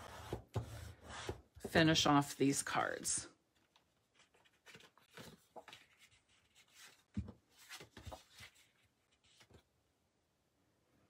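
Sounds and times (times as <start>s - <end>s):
rustling of cardstock: 4.0s - 9.7s.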